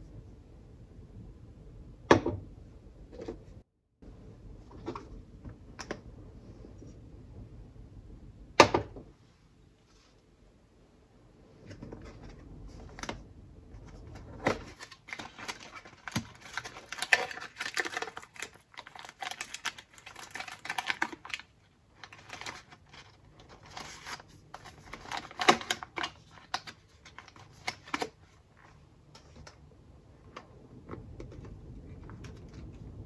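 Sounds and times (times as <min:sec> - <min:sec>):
paper and cardboard crinkling: 0:13.8 - 0:28.8.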